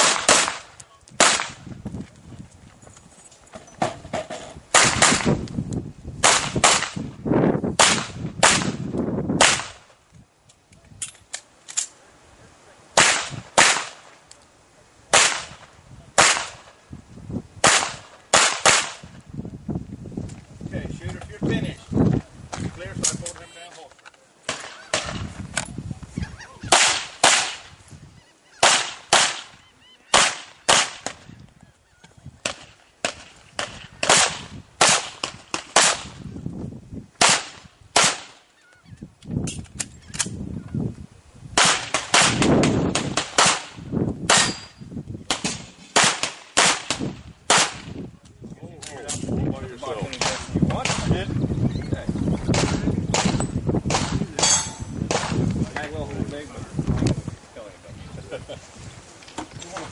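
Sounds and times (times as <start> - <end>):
handgun shots: 0.0 - 0.6, 26.7 - 27.6, 44.3 - 44.7.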